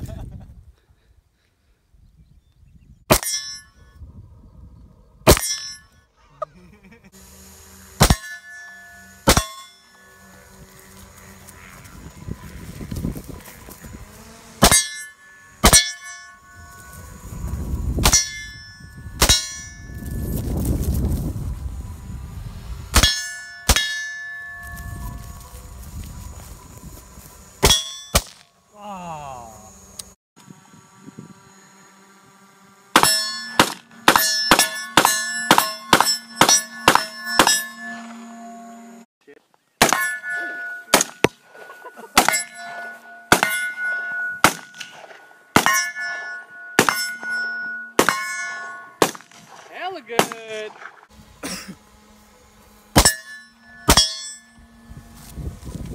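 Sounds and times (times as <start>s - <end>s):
bullets clanging on steel plate: 3.1s - 3.8s, 5.3s - 5.9s, 14.6s - 16.5s, 33.0s - 38.0s, 39.8s - 49.6s
rifle shots: 33.0s - 37.6s, 49.0s - 50.9s.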